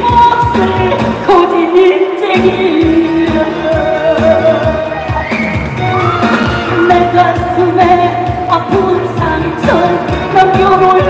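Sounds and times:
woman singing: 0.0s - 5.3s, 6.6s - 11.0s
backing track with steady beat: 0.0s - 11.0s.

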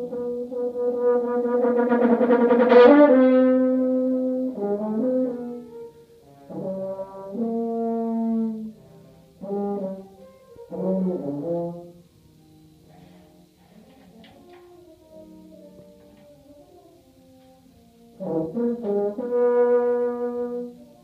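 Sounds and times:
french horn playing: 0.0s - 12.2s, 12.8s - 21.0s.

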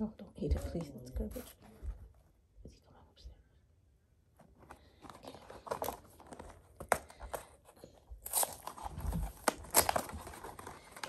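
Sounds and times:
packaging rustling and crinkling: 4.4s - 11.0s.

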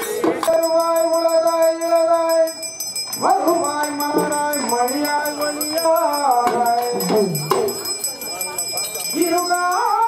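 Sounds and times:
person singing devotional song: 0.0s - 7.8s
tambourine jingling: 0.0s - 10.0s.

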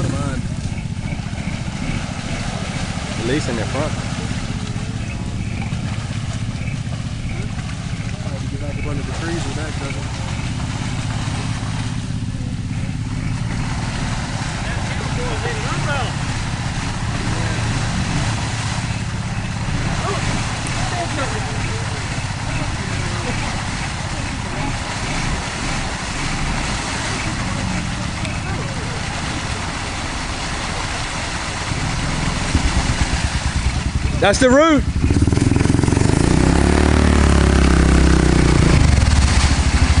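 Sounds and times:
atv engine running under load: 0.0s - 40.0s
water and mud sloshing: 0.0s - 40.0s.

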